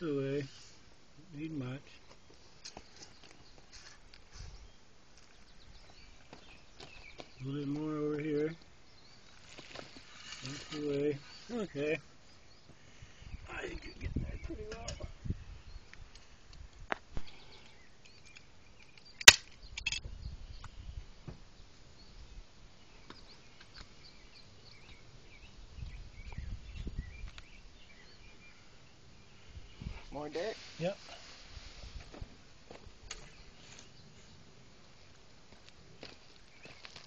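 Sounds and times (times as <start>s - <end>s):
soil thuds and scrapes: 9.3s - 11.7s
sharp click: 18.1s - 20.1s.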